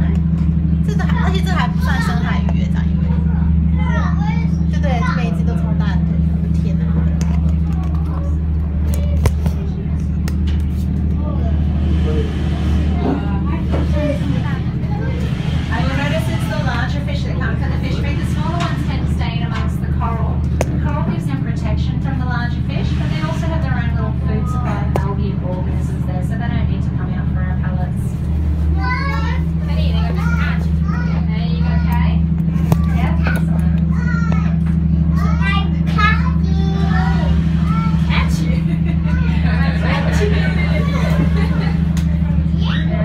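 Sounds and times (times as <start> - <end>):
boat engine drone: 0.0 - 43.0
passengers talking faintly: 0.0 - 43.0.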